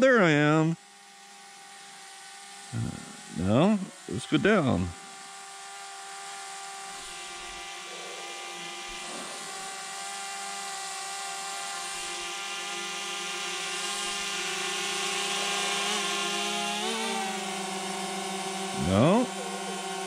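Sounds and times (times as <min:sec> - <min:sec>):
drone propellers whining: 0:02.2 - 0:20.0.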